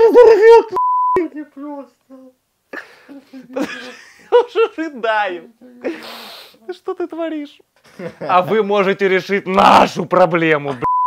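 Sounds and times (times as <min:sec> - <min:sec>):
man speaking loudly: 0:00.0 - 0:01.9, 0:08.3 - 0:10.8
censor bleep: 0:00.8 - 0:01.2.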